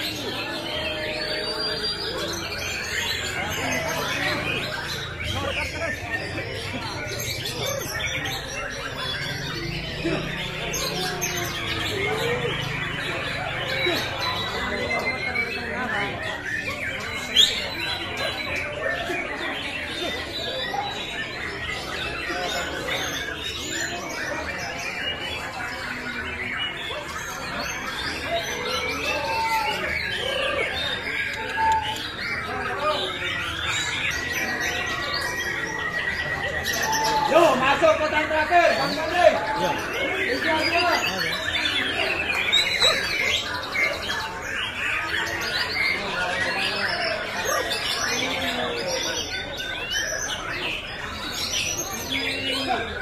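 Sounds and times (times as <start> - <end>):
birds whistling and chirping: 0.0 - 53.0
murmur of crowd voices: 0.0 - 53.0
songbirds singing: 0.0 - 53.0.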